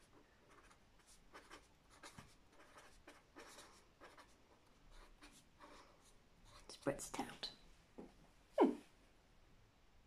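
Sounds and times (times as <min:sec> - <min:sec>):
marker pen writing on paper: 0:00.0 - 0:06.8.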